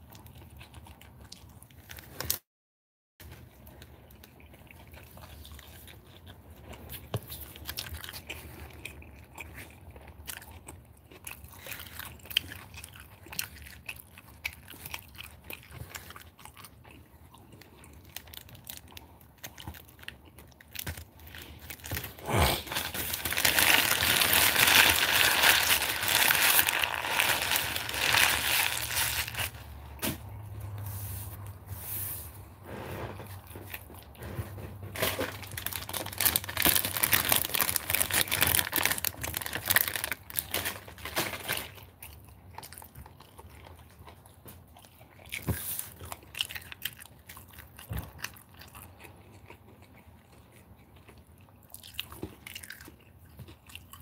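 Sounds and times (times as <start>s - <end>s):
person chewing food: 0.0s - 2.4s, 3.2s - 30.8s, 32.5s - 40.6s, 41.6s - 54.0s
plastic bag crinkling: 20.7s - 29.7s, 35.0s - 41.8s.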